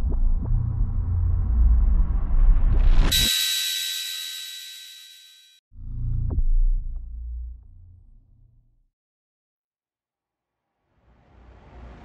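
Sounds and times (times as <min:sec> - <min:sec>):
deep rumble: 0:00.0 - 0:03.0
high shimmering chime: 0:03.1 - 0:05.6.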